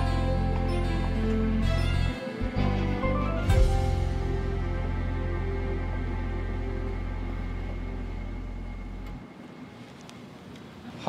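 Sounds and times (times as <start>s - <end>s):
dark drone music: 0.0s - 9.4s.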